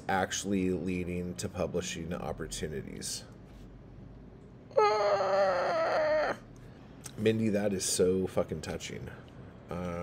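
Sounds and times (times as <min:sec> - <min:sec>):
man whimpering: 0:04.7 - 0:06.4.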